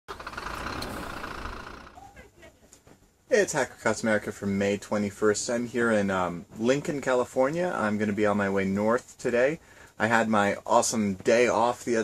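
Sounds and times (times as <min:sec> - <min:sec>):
vehicle engine rumbling: 0:00.0 - 0:02.3.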